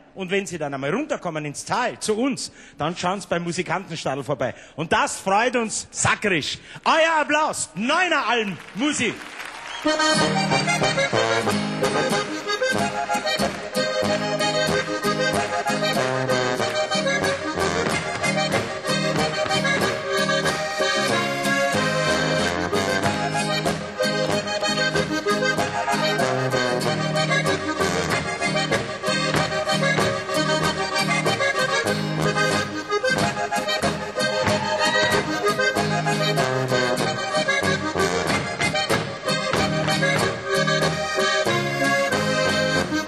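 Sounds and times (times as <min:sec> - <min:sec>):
button accordions playing: 0:09.7 - 0:43.0
guitar chords: 0:09.9 - 0:43.0
tuba bass: 0:10.0 - 0:43.0.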